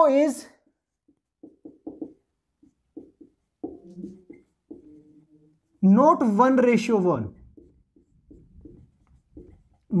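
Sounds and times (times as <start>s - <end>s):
man speaking: 0.0s - 0.6s, 5.8s - 7.4s
marker writing on whiteboard: 0.0s - 10.0s.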